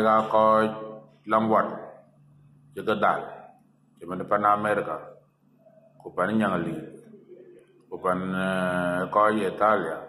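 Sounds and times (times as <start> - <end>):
man speaking: 0.0 - 2.1, 2.7 - 5.2, 6.0 - 10.0.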